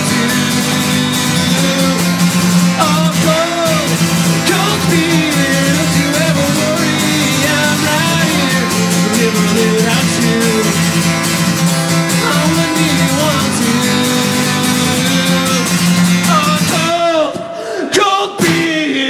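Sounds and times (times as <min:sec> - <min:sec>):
acoustic guitar strumming: 0:00.0 - 0:17.6
man singing: 0:00.0 - 0:19.0.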